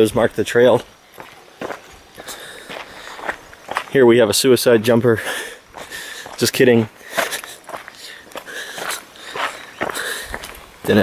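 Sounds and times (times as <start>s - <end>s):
footsteps on rocky trail: 0.0s - 11.0s.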